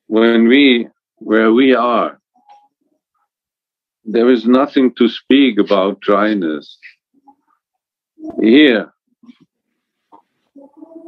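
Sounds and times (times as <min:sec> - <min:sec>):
man speaking: 0:00.1 - 0:02.2, 0:04.0 - 0:07.0, 0:08.3 - 0:08.9.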